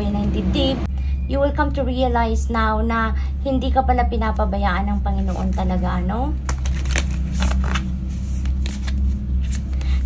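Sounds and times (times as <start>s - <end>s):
steady low hum: 0.0s - 10.0s
cards being shuffled: 6.4s - 10.0s.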